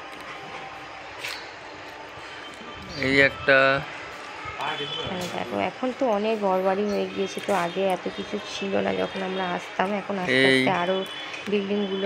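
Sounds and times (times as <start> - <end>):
person speaking: 10.2 - 10.9.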